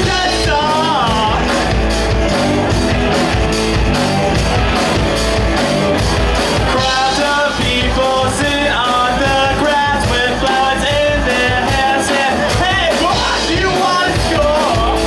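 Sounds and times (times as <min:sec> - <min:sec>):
person singing into microphone: 0:00.0 - 0:01.6, 0:06.7 - 0:15.0
live rock band playing: 0:00.0 - 0:15.0.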